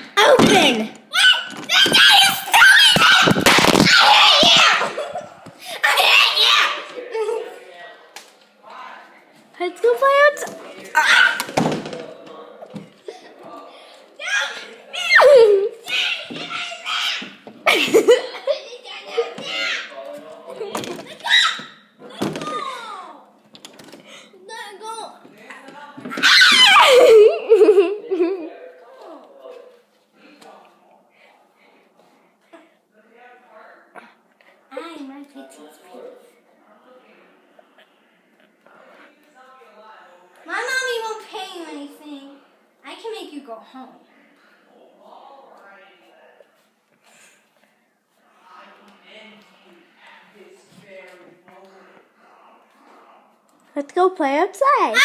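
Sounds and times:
child shouting and wailing: 1.1s - 5.0s, 5.8s - 6.8s, 14.2s - 17.3s.

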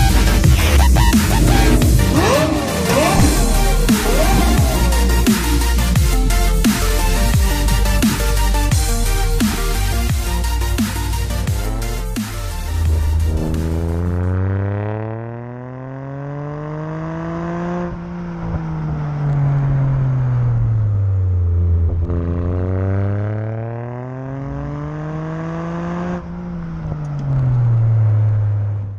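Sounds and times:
car exhaust revving: 0.0s - 28.9s.

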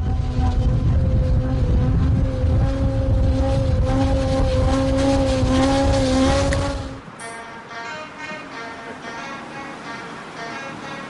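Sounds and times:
motorcycle engine at high revs: 0.0s - 7.1s.

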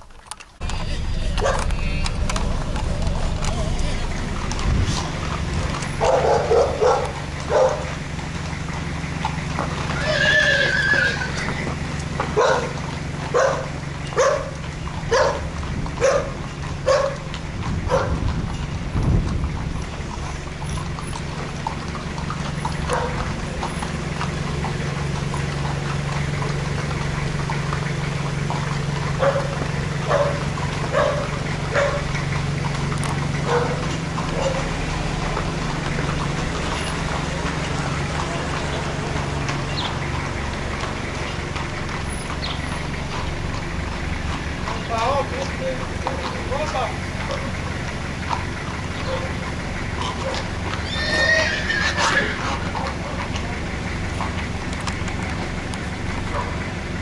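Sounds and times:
hooves on asphalt: 0.0s - 57.0s
low engine hum: 0.0s - 57.0s
horse whinny: 9.7s - 12.0s, 49.0s - 53.0s.

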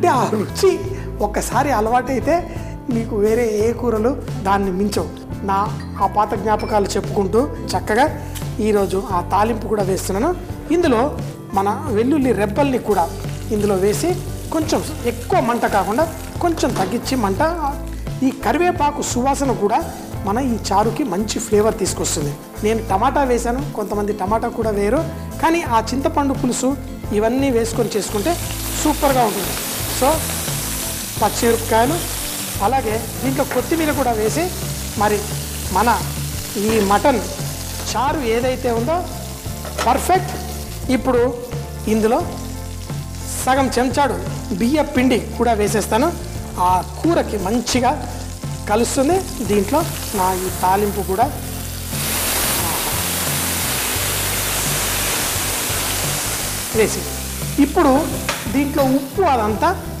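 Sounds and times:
background music with melody: 0.0s - 60.0s
sizzling in hot oil: 6.3s - 60.0s.

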